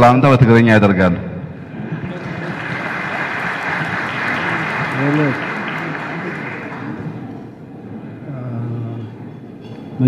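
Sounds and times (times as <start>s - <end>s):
audience applauding: 1.8s - 7.5s.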